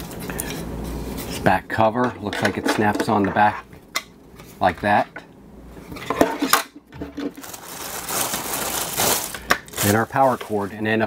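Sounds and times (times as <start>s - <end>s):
plastic bag crinkling: 7.0s - 11.0s.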